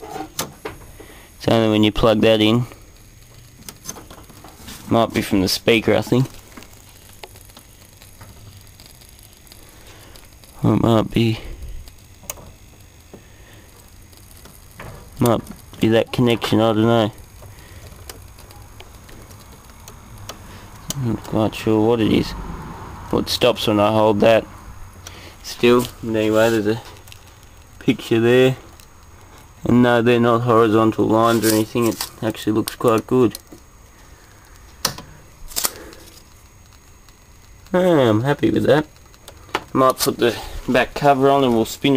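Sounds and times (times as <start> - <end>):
faint steady hum: 0.0 - 41.9
low steady hiss: 0.0 - 41.9
television crackling ticks: 1.0 - 22.4, 23.0 - 41.9
sharp clicks: 6.1 - 21.7, 34.3 - 37.8, 38.4 - 40.3.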